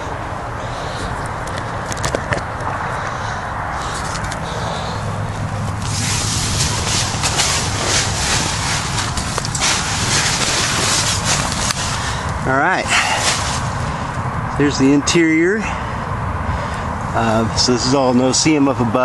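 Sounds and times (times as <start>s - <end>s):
tent fabric rustling: 5.6s - 12.2s, 12.9s - 13.7s.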